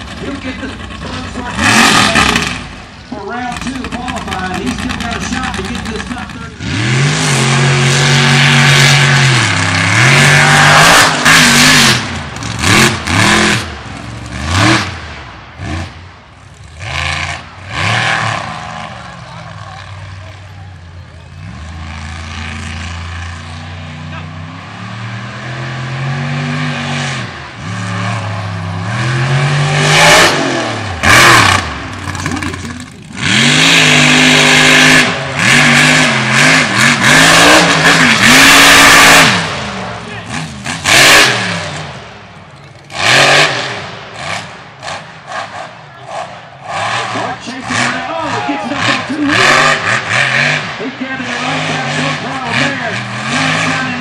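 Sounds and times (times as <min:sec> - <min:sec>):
truck engine revving: 0:00.0 - 0:54.0.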